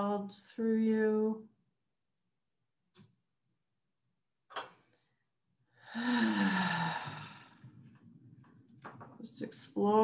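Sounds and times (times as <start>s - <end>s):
person sighing: 5.8s - 7.7s.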